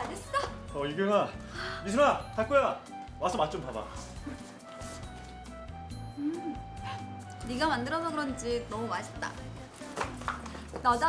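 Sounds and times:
soft music with slow bass: 0:00.0 - 0:11.0.

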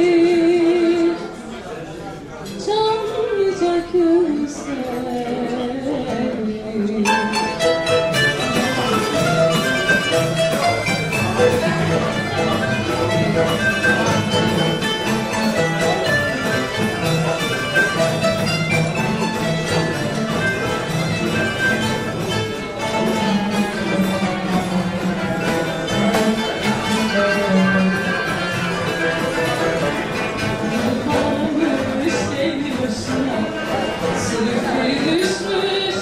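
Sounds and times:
plucked string notes: 0:02.6 - 0:36.0
live band playing instrumental: 0:04.8 - 0:36.0
cello: 0:05.1 - 0:36.0.

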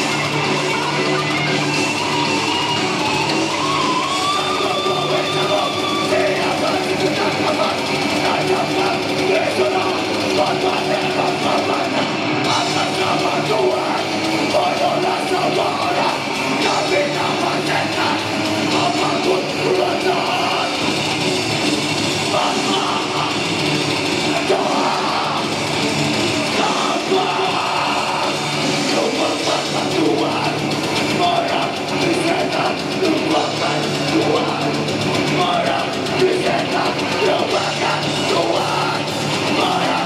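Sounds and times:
distorted electric guitars: 0:00.0 - 0:40.0.

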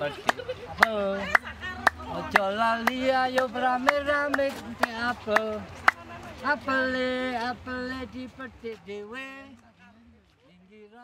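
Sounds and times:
person singing a chant-like song: 0:00.0 - 0:10.0
hand claps: 0:00.2 - 0:06.1.

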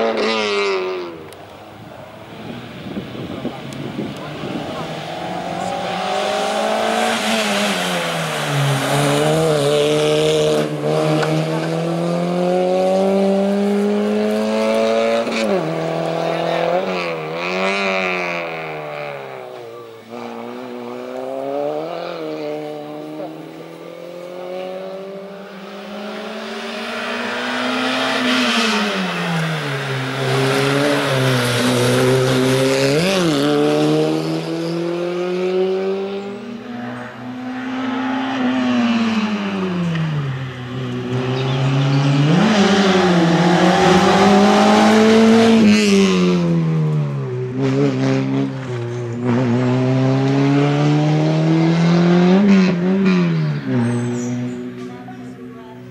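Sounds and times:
race car engine revving: 0:02.2 - 0:55.9.

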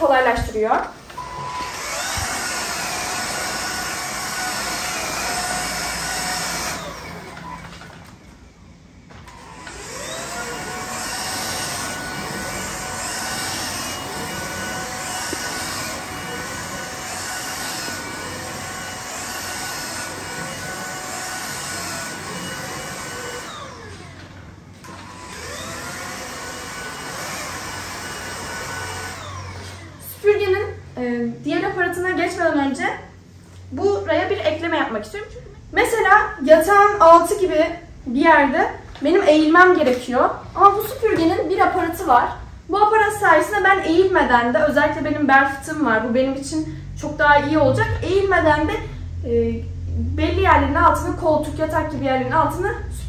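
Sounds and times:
stick vacuum motor whine: 0:01.0 - 0:30.3.

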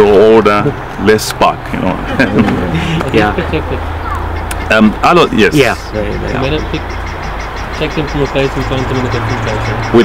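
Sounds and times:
low voices: 0:00.0 - 0:07.0, 0:07.7 - 0:10.0.

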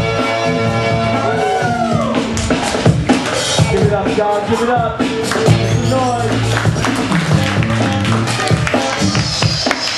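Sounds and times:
dance music with bass and drums: 0:00.0 - 0:09.9.

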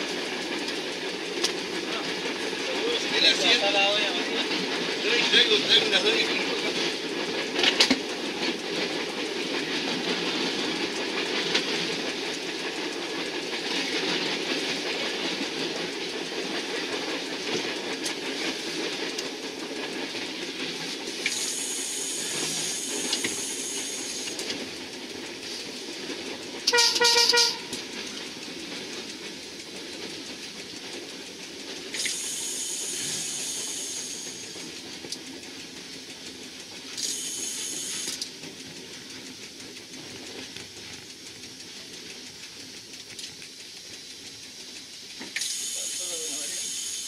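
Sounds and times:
train rumble from driving cab: 0:00.0 - 0:47.0
high hiss: 0:21.2 - 0:24.4, 0:31.9 - 0:34.6, 0:37.0 - 0:38.2, 0:43.6 - 0:47.0
train horn blast: 0:26.7 - 0:27.8.

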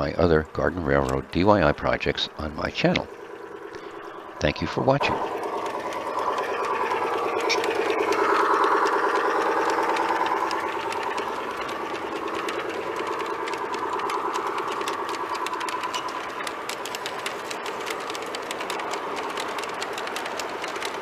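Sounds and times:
model train motor humming: 0:00.0 - 0:21.0
wheels clicking on track: 0:00.0 - 0:21.0.

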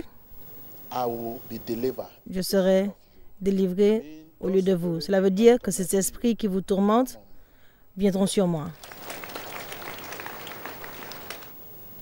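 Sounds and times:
congregation applauding: 0:08.8 - 0:11.6.

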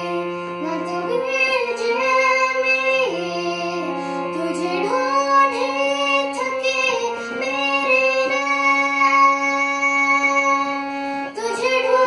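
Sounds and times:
boy singing: 0:00.0 - 0:12.0
electronic keyboard held notes: 0:00.0 - 0:12.0.

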